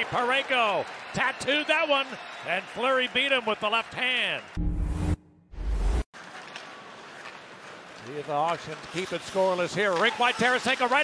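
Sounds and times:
skates and sticks scraping ice: 6.2 - 11.0.

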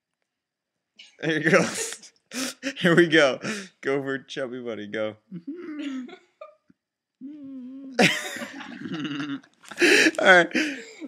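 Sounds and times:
man's loud outburst: 1.2 - 3.8, 9.8 - 10.8
man mumbling with full mouth: 1.2 - 4.0, 8.8 - 10.8.

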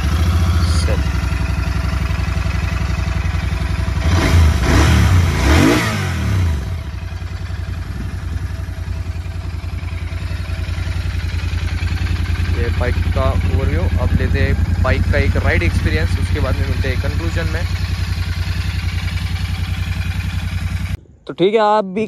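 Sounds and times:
engine throttle blips: 0.0 - 21.0
motorcycle engine idling: 0.0 - 21.0.

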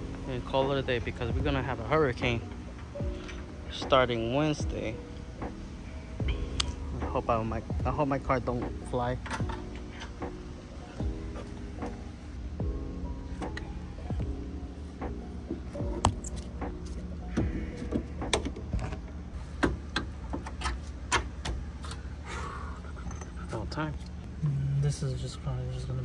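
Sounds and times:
background music: 0.0 - 26.0.

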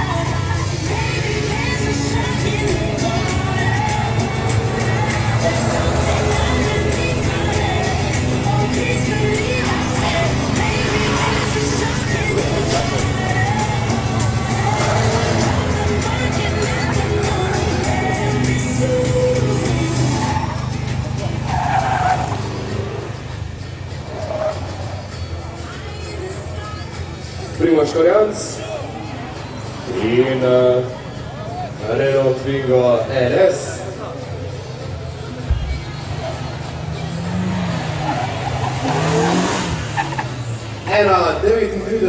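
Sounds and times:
car engine running hard: 0.0 - 42.0
tyres squealing: 1.0 - 23.3, 36.1 - 40.6.

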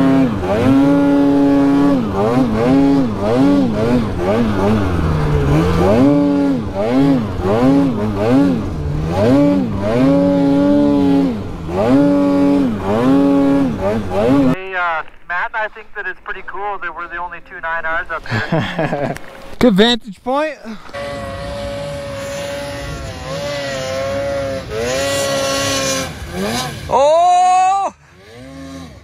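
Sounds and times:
snowmobile engine revving: 0.0 - 14.6, 17.9 - 19.5, 20.3 - 29.0.

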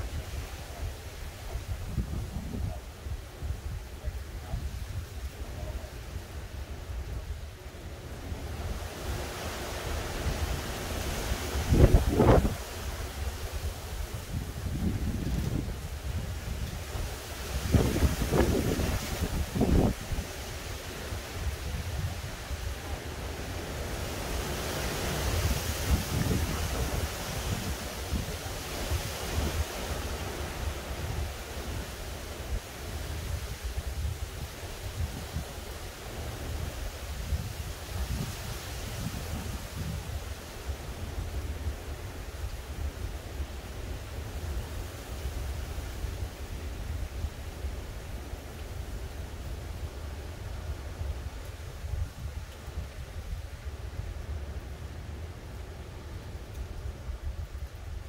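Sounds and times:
wind buffeting microphone: 0.0 - 58.0
wind rushing through trees: 0.0 - 58.0.

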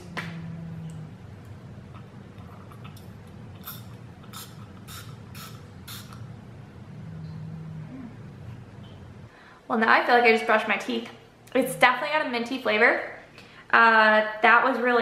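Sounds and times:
pump spray bottle misting: 3.6 - 6.3.

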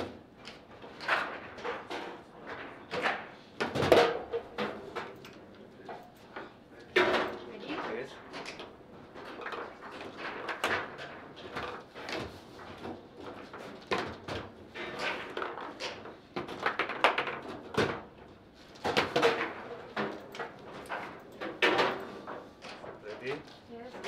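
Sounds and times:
foosball knocks and clacks: 0.0 - 23.1.

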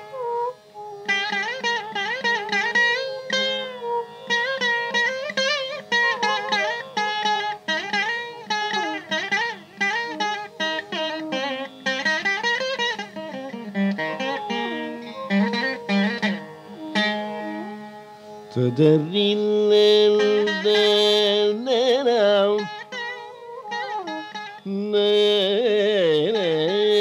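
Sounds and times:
plucked string melody: 0.0 - 27.0.

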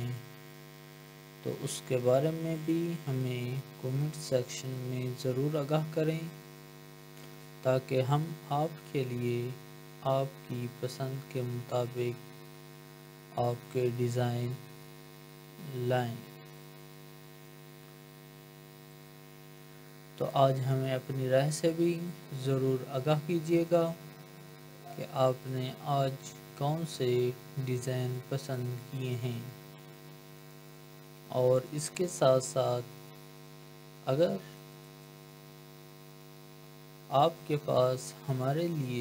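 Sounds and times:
electrical mains hum: 0.0 - 39.0.

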